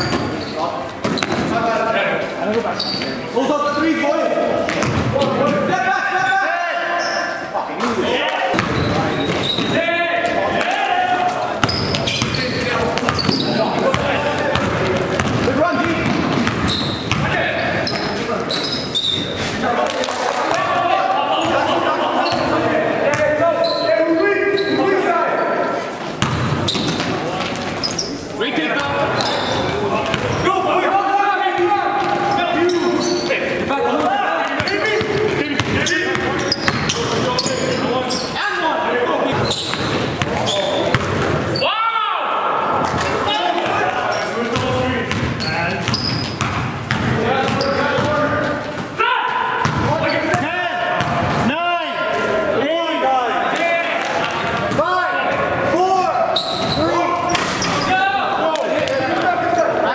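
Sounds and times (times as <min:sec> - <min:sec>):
players calling out: 0:00.0 - 0:59.9
basketball bouncing on court floor: 0:01.0 - 0:01.6, 0:04.6 - 0:05.6, 0:08.5 - 0:09.8, 0:11.6 - 0:18.2, 0:26.2 - 0:28.0, 0:30.0 - 0:30.4, 0:34.6 - 0:37.2, 0:39.6 - 0:41.4, 0:44.5 - 0:48.9, 0:49.6 - 0:51.4.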